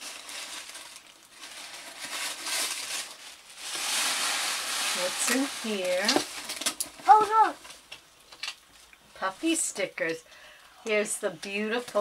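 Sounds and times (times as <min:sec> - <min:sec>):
paper rustling: 0:00.0 - 0:07.6
short high-pitched voice: 0:07.1 - 0:07.6.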